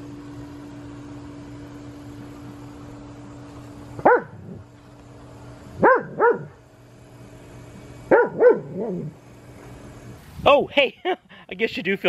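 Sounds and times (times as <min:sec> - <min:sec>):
dog barking: 0:04.0 - 0:04.6, 0:05.8 - 0:06.6, 0:08.1 - 0:09.1.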